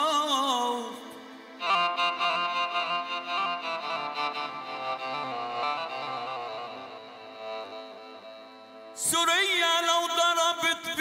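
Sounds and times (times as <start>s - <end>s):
ensemble music with bowed strings: 0.0s - 9.8s.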